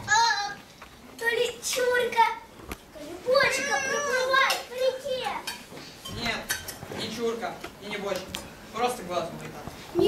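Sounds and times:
children's voices: 0:00.0 - 0:05.7
spoons clinking on metal bowls: 0:05.4 - 0:06.8.

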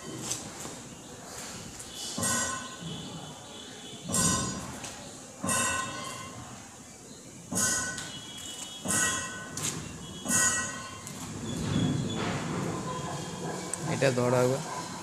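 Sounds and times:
sharp ringing knocks: 0:02.2 - 0:03.2, 0:04.0 - 0:04.8, 0:05.4 - 0:06.4, 0:07.5 - 0:13.6.

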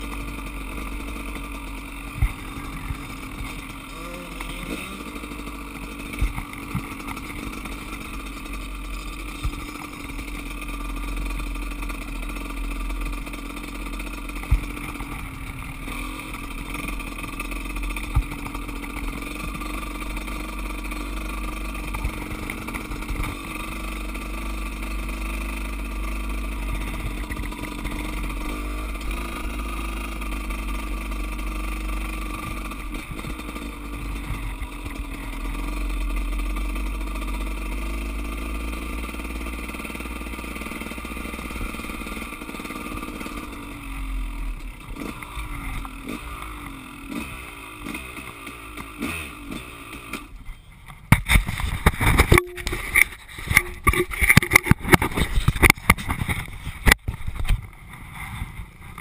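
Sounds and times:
two-stroke dirt bike engine: 0:00.0 - 0:59.0.

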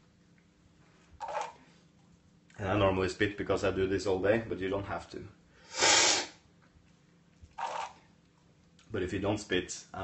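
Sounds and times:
loud coffee slurp: 0:01.2 - 0:01.6, 0:05.7 - 0:06.4, 0:07.6 - 0:08.0
spitting into a cup: 0:05.7 - 0:06.4, 0:07.6 - 0:08.0.

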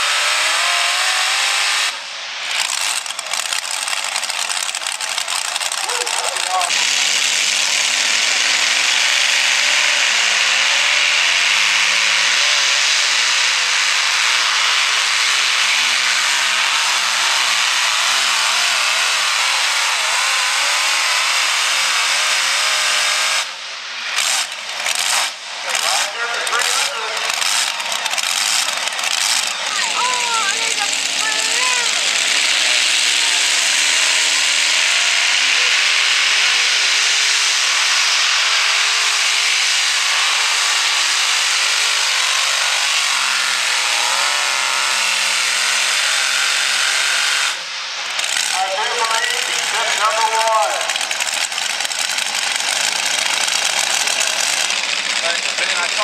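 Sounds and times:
tractor engines at full throttle: 0:00.0 - 0:56.0.

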